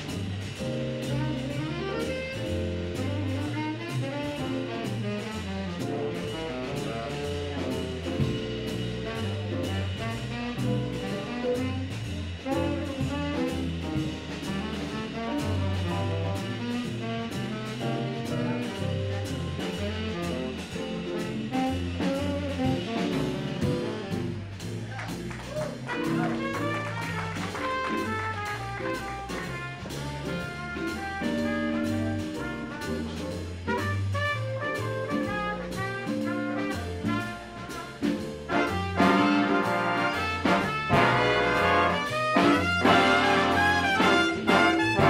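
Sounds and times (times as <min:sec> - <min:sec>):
drums keeping a steady beat: 0:00.0 - 0:45.0
tenor saxophone jazz solo: 0:00.0 - 0:45.0
upright bass line: 0:00.0 - 0:45.0.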